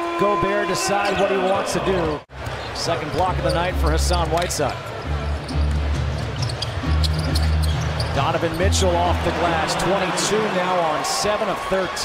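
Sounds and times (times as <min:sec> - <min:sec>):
arena music with low bass: 0:03.3 - 0:09.8.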